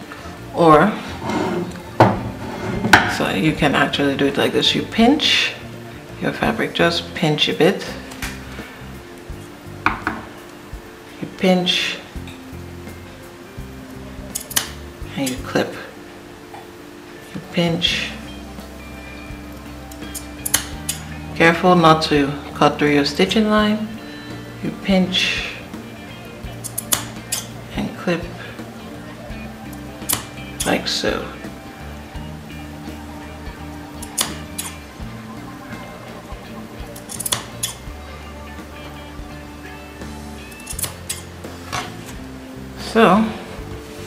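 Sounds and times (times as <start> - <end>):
background music: 0.0 - 44.0.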